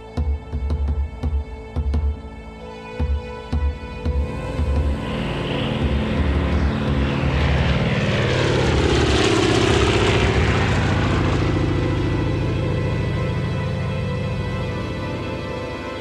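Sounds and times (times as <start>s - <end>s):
propeller airplane taking off: 3.7s - 16.0s.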